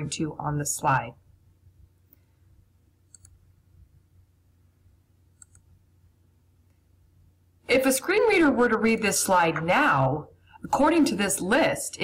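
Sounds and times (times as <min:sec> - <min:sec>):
computer mouse clicks: 0:03.1 - 0:03.4, 0:05.4 - 0:05.7.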